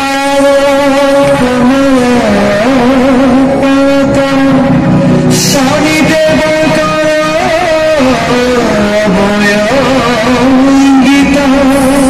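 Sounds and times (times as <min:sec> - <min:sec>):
loud music holding long note: 0:00.0 - 0:12.0.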